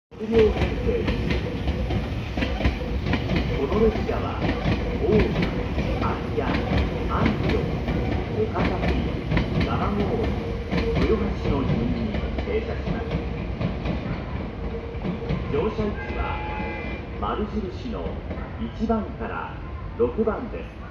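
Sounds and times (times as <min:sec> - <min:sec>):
wheels clacking over rail joints: 0:00.2 - 0:18.6.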